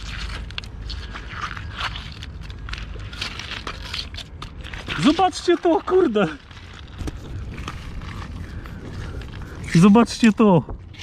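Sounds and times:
boots shifting on stones: 0.0 - 11.0
pebbles clicking and scraping: 0.0 - 11.0.

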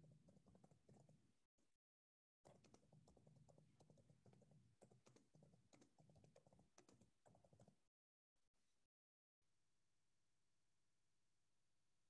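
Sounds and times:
typing on computer keyboard: 2.5 - 7.8.

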